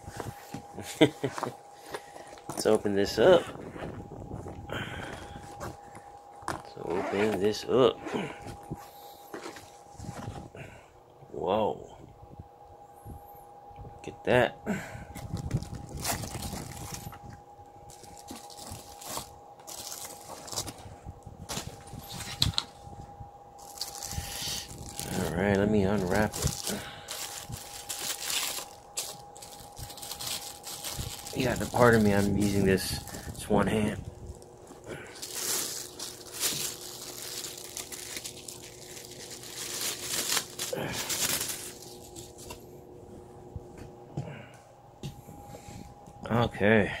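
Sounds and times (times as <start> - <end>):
faint steady high tone: 0.0 - 43.0
case rustling: 15.2 - 20.9, 26.0 - 33.2, 34.4 - 42.6
plastic bag crinkling: 15.2 - 22.7, 23.6 - 42.6.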